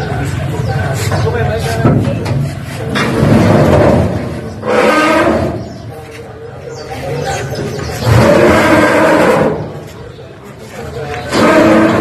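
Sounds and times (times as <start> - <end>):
metal grating scrapes: 2.4 - 6.2, 11.3 - 12.0.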